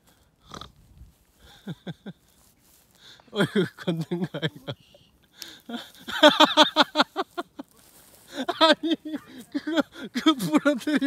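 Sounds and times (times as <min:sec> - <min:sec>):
person laughing heartily: 0:01.4 - 0:02.4, 0:03.3 - 0:11.0.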